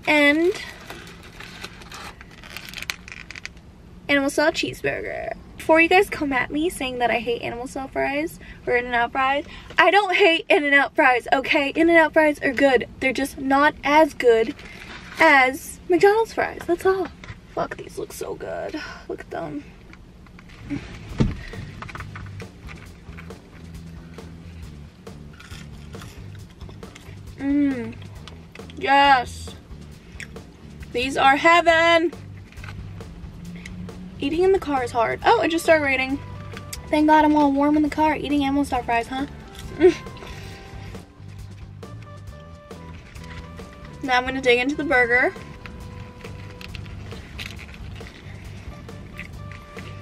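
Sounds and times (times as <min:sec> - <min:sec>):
paper wrapper crinkling: 0:00.1 - 0:03.6, 0:42.7 - 0:44.0, 0:45.4 - 0:50.0
soft background music: 0:20.8 - 0:50.0
thump: 0:21.2 - 0:21.4.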